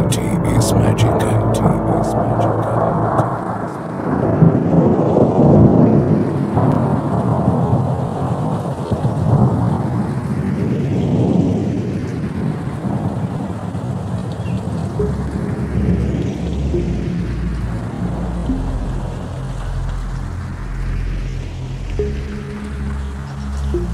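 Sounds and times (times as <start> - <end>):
thunder-like rumbling: 1.6 - 23.9.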